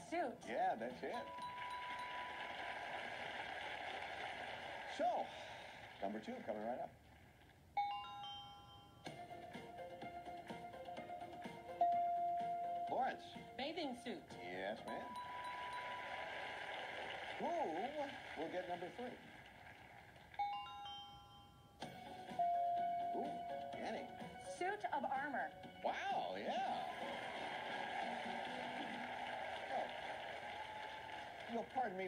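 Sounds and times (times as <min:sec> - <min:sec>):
ringing tones: 0:07.8 - 0:09.4, 0:11.7 - 0:13.6, 0:14.8 - 0:16.6, 0:20.4 - 0:23.7.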